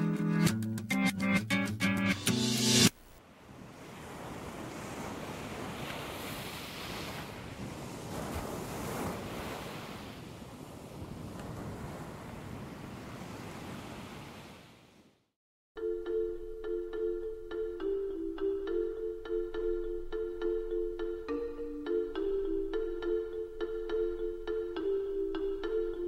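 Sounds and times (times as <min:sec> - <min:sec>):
ocean surf washing in: 0:02.9 - 0:15.2.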